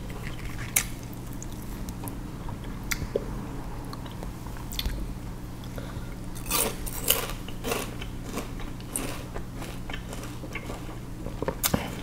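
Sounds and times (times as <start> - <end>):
steady low hum: 0.0 - 12.0
chewing raw sugarcane: 6.4 - 12.0.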